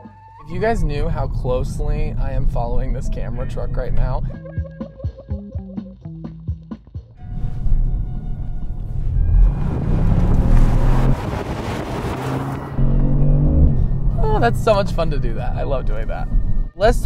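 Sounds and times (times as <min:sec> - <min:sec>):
background music with plucked notes: 0:02.2 - 0:10.8, 0:14.1 - 0:17.0
car engine accelerating: 0:07.2 - 0:16.7
road and wind noise: 0:07.2 - 0:17.0.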